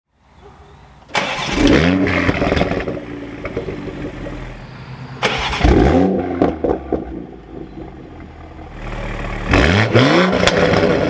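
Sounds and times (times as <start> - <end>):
car engine starting and revving: 1.1 - 11.0.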